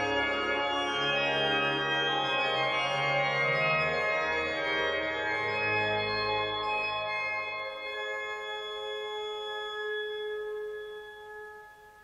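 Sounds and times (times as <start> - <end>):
pipe organ held chord: 0.0 - 12.0.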